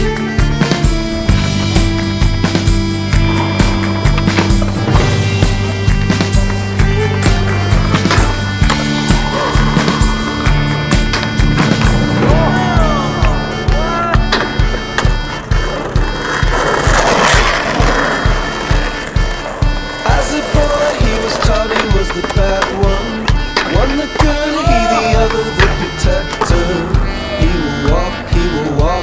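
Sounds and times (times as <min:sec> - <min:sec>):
music with steady beat: 0:00.0 - 0:29.0
skateboard wheels rolling on asphalt: 0:00.9 - 0:12.4, 0:14.6 - 0:24.5
skateboard popping and landing: 0:01.2 - 0:10.5, 0:14.3 - 0:26.8.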